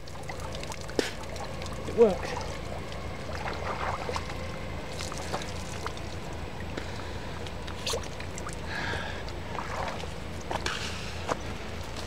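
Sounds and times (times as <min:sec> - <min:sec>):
water splashing and dripping: 0:00.0 - 0:12.0.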